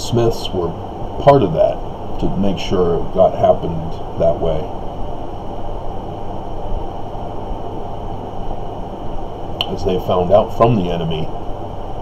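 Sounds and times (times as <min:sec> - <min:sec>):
faint high whine: 0:00.0 - 0:12.0
low room rumble: 0:00.0 - 0:12.0.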